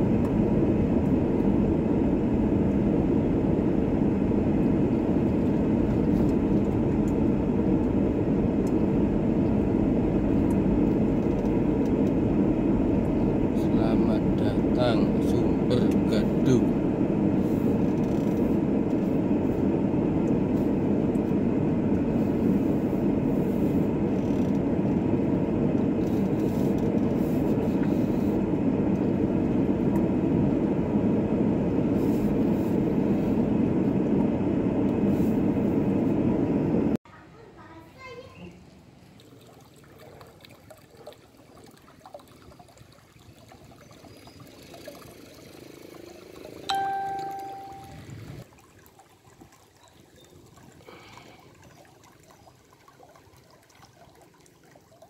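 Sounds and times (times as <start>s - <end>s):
car engine and road noise: 0.0s - 37.0s, 44.1s - 48.5s
outdoor ambience: 0.0s - 55.0s
ringing tone: 46.7s - 48.2s.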